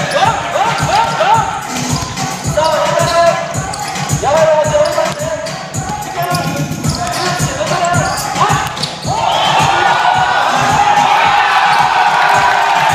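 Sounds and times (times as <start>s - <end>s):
crowd cheering and shouting: 0.0s - 12.9s
scattered voices: 0.0s - 12.9s
basketball bouncing on court: 0.1s - 9.8s.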